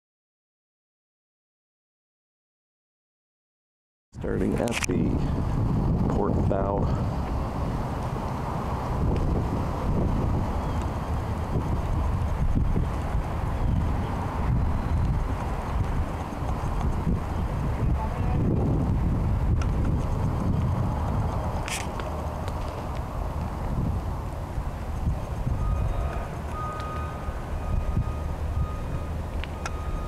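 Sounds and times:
wind buffeting microphone: 4.2s - 30.0s.

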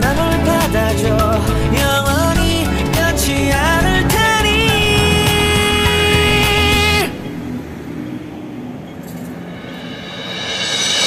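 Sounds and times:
cars driving through junction: 0.0s - 10.5s.

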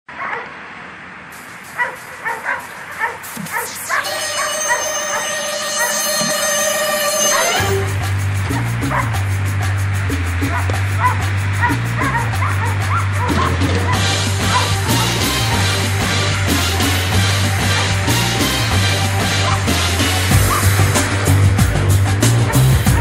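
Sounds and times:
dog barking: 0.1s - 0.6s, 1.8s - 5.3s, 8.5s - 9.1s, 10.5s - 15.9s, 19.2s - 19.8s, 22.3s - 23.0s
music with steady bass beat: 1.4s - 23.0s.

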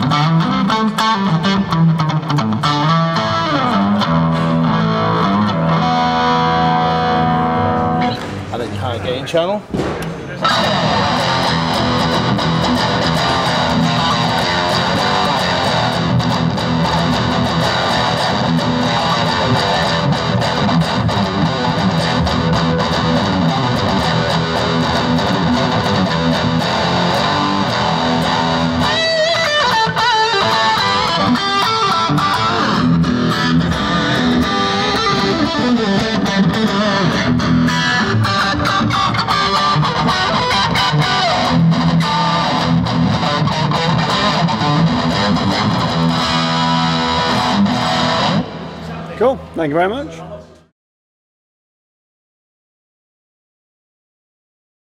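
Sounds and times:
distorted electric guitar: 0.0s - 8.5s, 10.4s - 49.1s.

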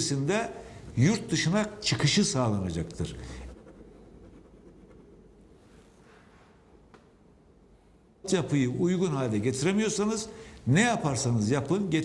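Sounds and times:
man speaking: 0.0s - 3.4s, 8.2s - 12.0s.

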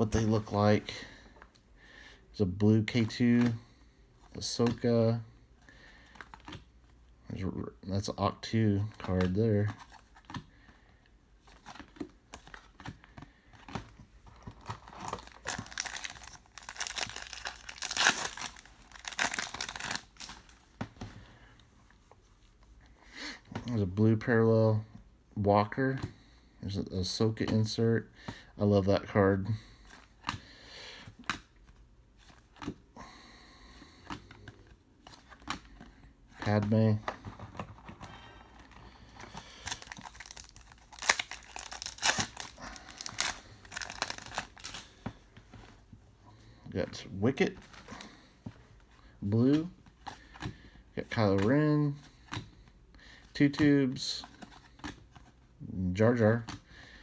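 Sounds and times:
trading cards clicking and rustling: 11.4s - 21.1s, 34.0s - 45.7s.

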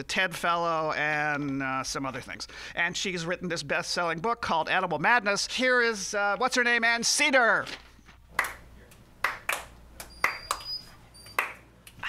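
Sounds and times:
people clapping: 8.3s - 12.0s.

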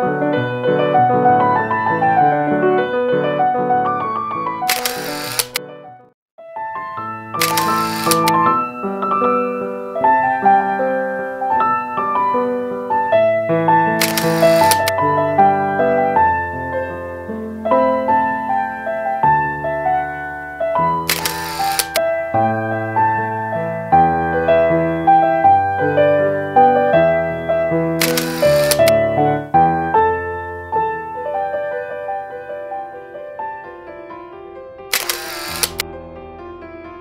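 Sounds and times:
piano music: 0.0s - 37.0s
camera shutter sound effect: 4.7s - 5.6s, 7.4s - 8.4s, 14.0s - 15.0s, 21.1s - 22.0s, 28.0s - 29.0s, 34.9s - 35.8s.

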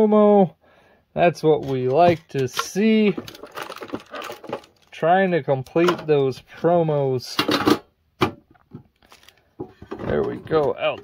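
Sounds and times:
foil packs rustling: 1.6s - 6.3s, 9.0s - 9.6s.

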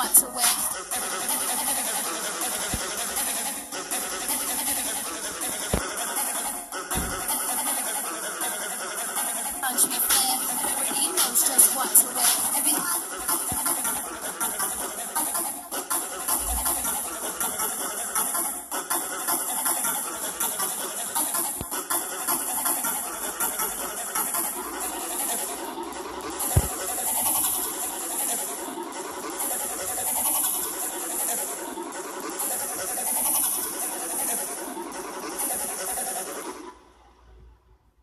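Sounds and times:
heavily distorted remix music: 0.0s - 37.2s.

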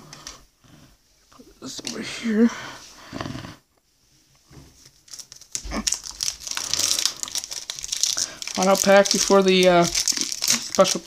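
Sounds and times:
plastic wrapper crinkling: 4.8s - 11.0s.

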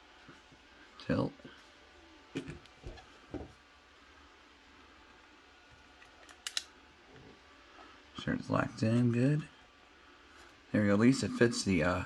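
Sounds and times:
sharp clamp clicks: 6.0s - 6.7s.

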